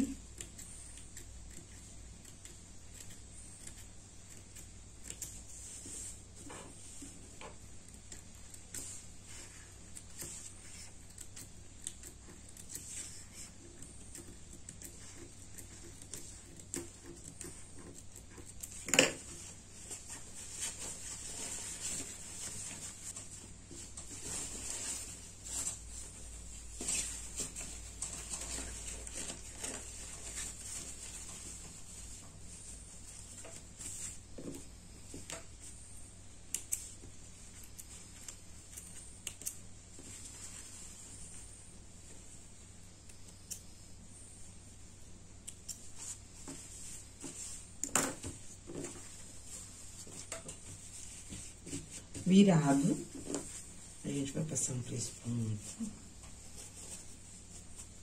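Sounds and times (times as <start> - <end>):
fabric rustling: 19.2 - 34.6, 55.0 - 58.0.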